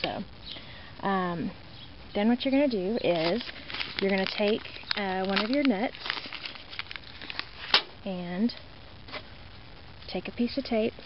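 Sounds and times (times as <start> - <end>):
plastic bag rustling: 3.0 - 7.9.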